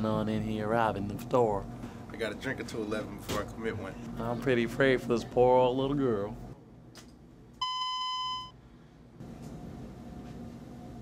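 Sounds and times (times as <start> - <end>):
faint steady hum: 0.0 - 11.0
censor bleep tone: 7.6 - 8.6.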